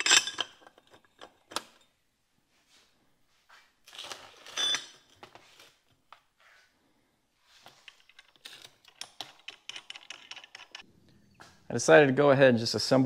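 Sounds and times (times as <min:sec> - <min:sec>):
metal bolts and washers clinking: 0:00.0 - 0:02.0, 0:04.4 - 0:05.1, 0:07.7 - 0:11.4
metallic ring: 0:04.5 - 0:05.0.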